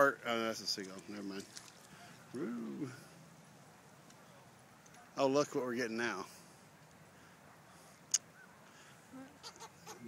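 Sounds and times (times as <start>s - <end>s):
faint outdoor background hiss: 0.0s - 10.0s.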